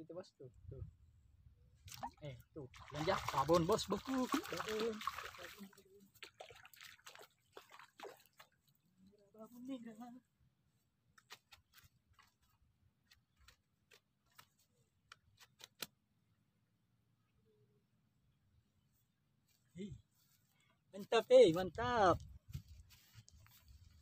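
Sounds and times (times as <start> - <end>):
faint water splashing: 1.9 - 9.9.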